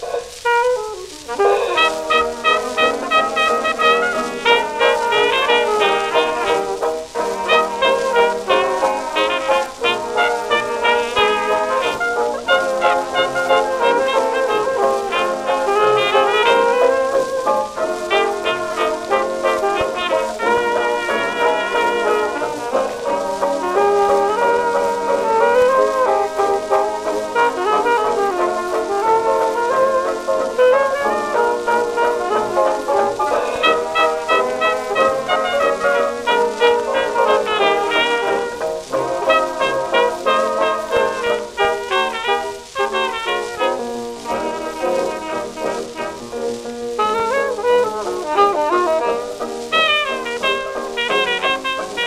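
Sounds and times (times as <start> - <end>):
jazz dance band recording: 0.0 - 52.0.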